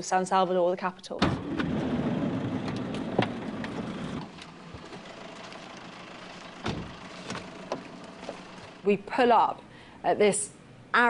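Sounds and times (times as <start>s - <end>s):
vehicle engine rumbling: 1.2s - 9.4s
knocks and thud: 2.5s - 4.0s, 6.6s - 8.4s.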